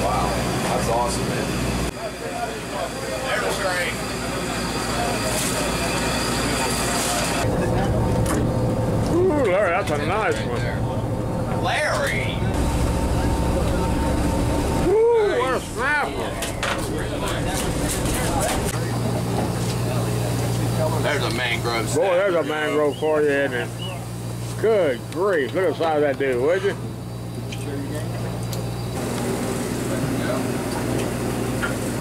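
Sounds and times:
boat machinery droning: 0.0 - 32.0
people calling out: 14.8 - 16.4.

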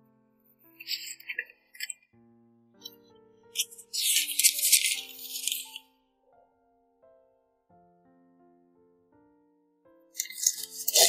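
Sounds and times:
soft background music: 0.0 - 11.0
wrapper crinkling: 0.8 - 2.0, 3.6 - 5.8, 10.2 - 11.0.

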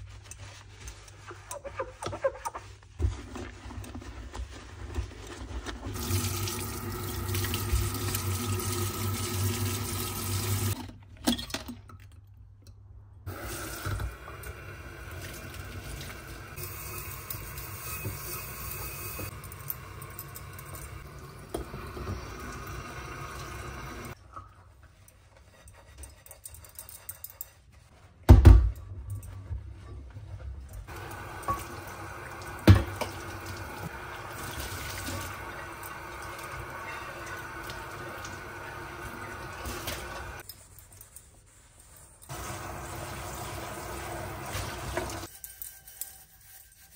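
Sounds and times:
dishes being rinsed: 5.8 - 11.7, 13.3 - 25.5, 30.8 - 40.4, 42.3 - 46.9
tap water running into sink: 6.0 - 10.8, 13.3 - 24.2, 30.9 - 40.4, 42.3 - 45.3.

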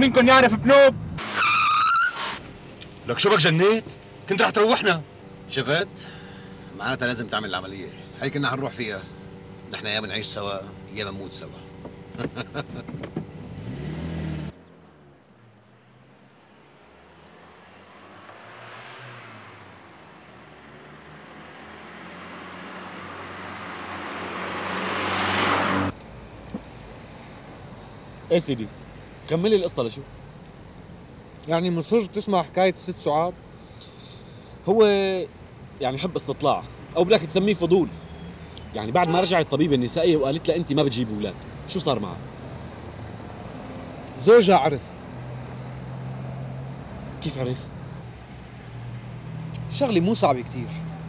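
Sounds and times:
car tyres squealing: 0.0 - 3.8, 21.2 - 26.0, 37.1 - 41.4
car engine hum: 0.0 - 51.0.

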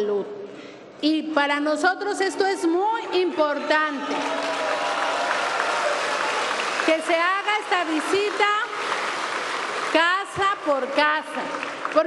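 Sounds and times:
crowd applauding: 4.0 - 12.0.

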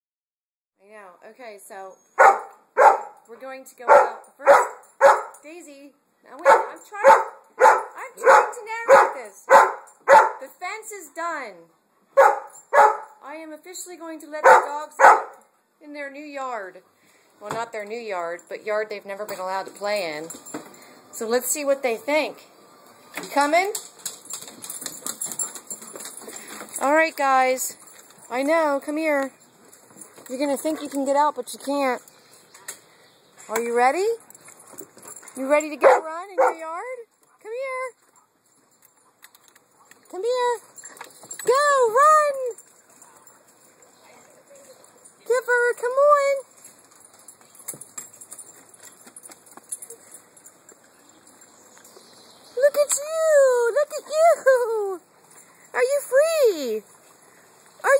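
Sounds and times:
outdoor background hiss: 0.8 - 57.9
dog collar tags jingling: 2.2 - 5.6, 23.3 - 32.1, 33.7 - 54.6.

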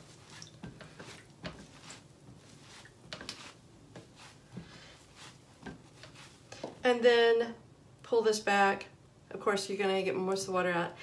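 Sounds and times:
soft handling sounds: 0.0 - 6.8.

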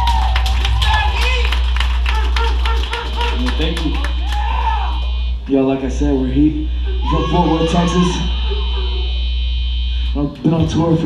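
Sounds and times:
amplifier hum and buzz: 0.0 - 11.0
man talking over loudspeaker: 0.8 - 4.2, 5.5 - 8.3, 10.2 - 11.0.

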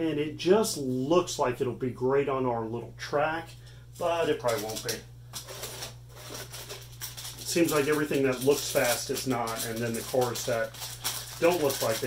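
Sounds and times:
low electrical hum: 0.0 - 12.0
clicks and rustling of packaging: 4.3 - 12.0.

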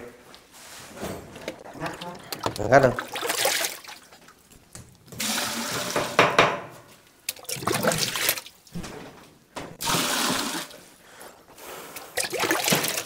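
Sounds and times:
water pouring and splashing in a tub: 1.6 - 6.2, 7.2 - 8.7, 9.8 - 10.9, 11.9 - 13.0.

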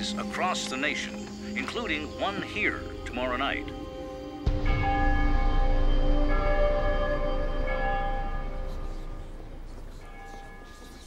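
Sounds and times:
deep ringing bell tones: 1.6 - 11.0.

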